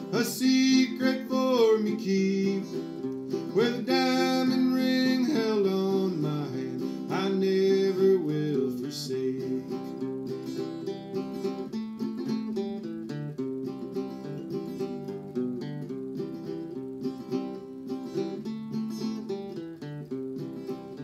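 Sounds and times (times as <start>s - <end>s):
man singing a ballad: 0.0s - 9.9s
fingerpicked acoustic guitar: 0.0s - 21.0s.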